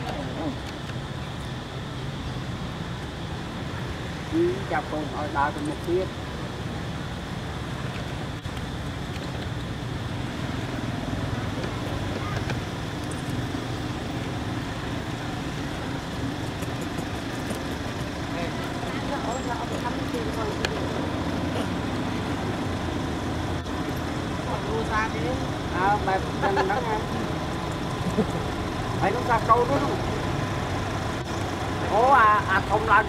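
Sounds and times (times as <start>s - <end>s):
distant traffic rumble: 0.0s - 33.0s.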